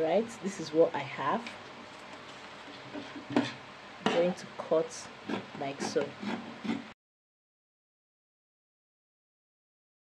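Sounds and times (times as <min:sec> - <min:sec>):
woman speaking: 0:00.0 - 0:01.5, 0:04.0 - 0:06.2.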